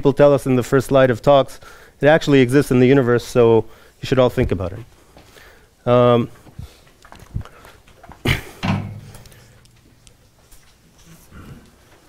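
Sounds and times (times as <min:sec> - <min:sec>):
sharp knock: 0:08.6 - 0:09.6
soft thump: 0:08.6 - 0:09.6.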